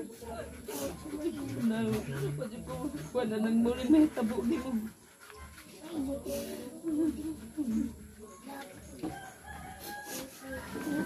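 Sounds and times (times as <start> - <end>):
rooster crowing: 9.1 - 11.0.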